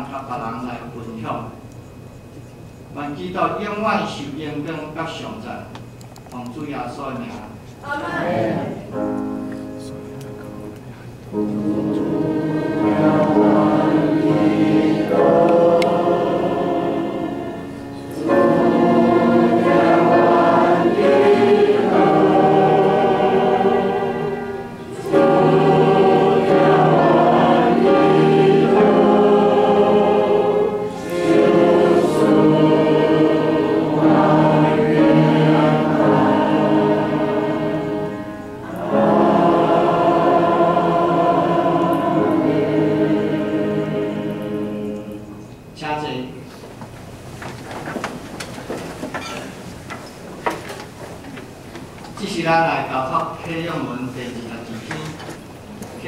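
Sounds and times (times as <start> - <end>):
congregation singing a hymn: 7.1 - 9.8, 11.3 - 45.7.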